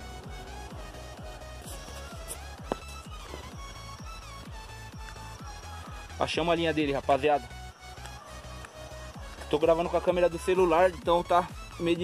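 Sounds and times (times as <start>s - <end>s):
electronic music with fast drum beat: 0.0s - 12.0s.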